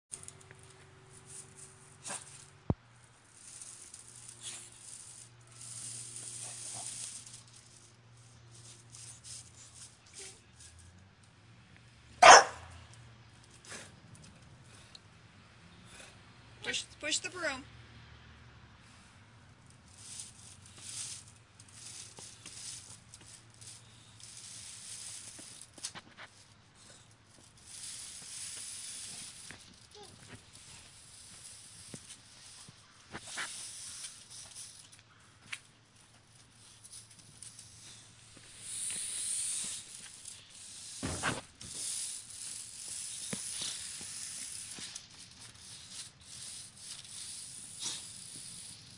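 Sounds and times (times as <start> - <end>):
broom bristles scraping concrete: 0.1 - 11.1, 15.8 - 17.7, 18.8 - 48.9.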